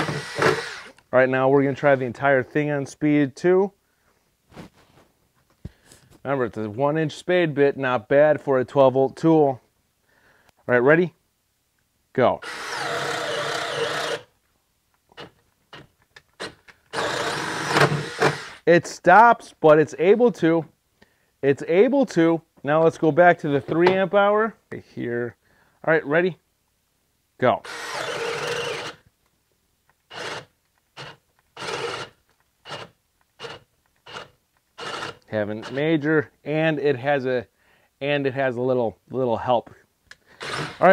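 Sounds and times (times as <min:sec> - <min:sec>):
cordless drill boring into wood: 0:00.0 - 0:01.0, 0:12.4 - 0:14.3, 0:16.4 - 0:18.7, 0:27.6 - 0:29.0, 0:30.1 - 0:35.8, 0:40.4 - 0:40.9.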